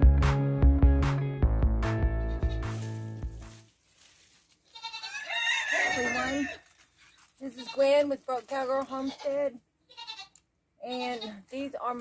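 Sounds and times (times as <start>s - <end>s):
goat bleating: 2.2s - 2.8s, 4.7s - 6.6s, 7.4s - 8.1s, 8.7s - 11.7s.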